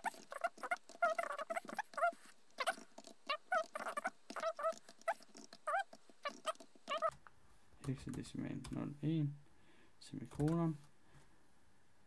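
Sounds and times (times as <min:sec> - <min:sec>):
sped-up voice squeaky chirps: 0:00.0 - 0:07.1
fast keyboard clicks: 0:07.8 - 0:08.9, 0:10.2 - 0:10.6.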